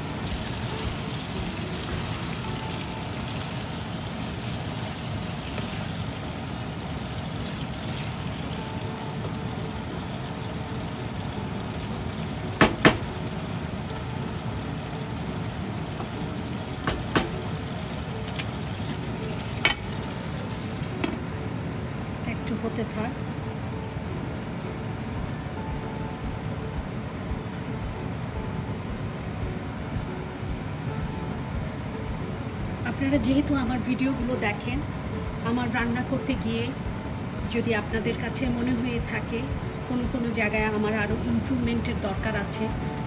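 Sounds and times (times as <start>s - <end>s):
curry sizzling and bubbling: 0.0s - 43.0s
sharp knocks: 12.6s - 13.1s.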